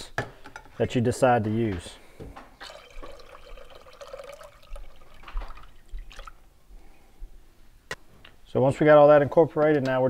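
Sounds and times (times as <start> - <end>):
liquid pouring into saucepan: 2.6 - 6.5.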